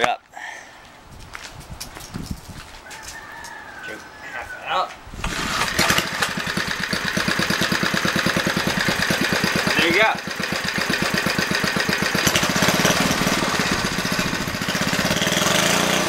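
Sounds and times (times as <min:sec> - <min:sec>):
engine pull-start: 0:05.2 - 0:09.9, 0:10.5 - 0:15.5
small engine idling: 0:05.2 - 0:16.0.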